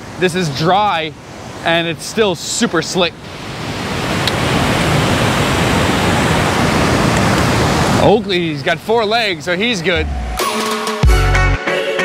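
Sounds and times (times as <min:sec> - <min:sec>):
river rapids rushing: 0:00.0 - 0:10.4.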